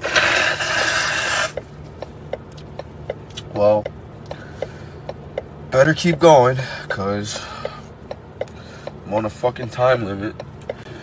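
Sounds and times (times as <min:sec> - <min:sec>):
man blowing his nose: 0:00.0 - 0:01.6.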